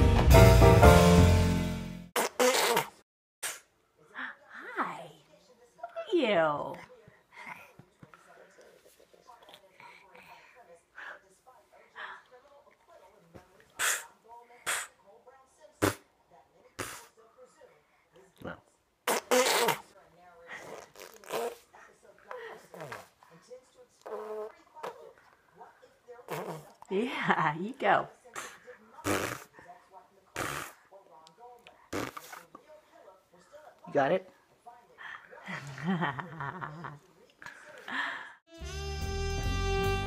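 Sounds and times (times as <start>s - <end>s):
baby blowing a raspberry: 2.2s - 3.7s, 13.8s - 15.0s, 15.8s - 16.1s, 16.8s - 17.1s, 19.1s - 19.8s, 20.6s - 21.7s, 24.0s - 25.1s, 26.3s - 26.8s, 28.4s - 29.6s, 30.4s - 30.8s, 31.9s - 32.4s.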